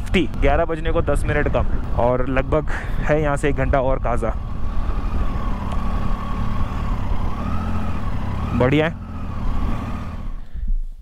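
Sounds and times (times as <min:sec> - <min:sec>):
motorcycle engine rumble: 0:00.0 - 0:11.0.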